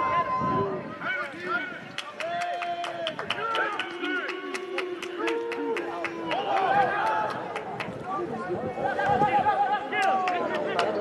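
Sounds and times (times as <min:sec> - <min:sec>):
players shouting: 0:00.0 - 0:07.6, 0:08.8 - 0:11.0.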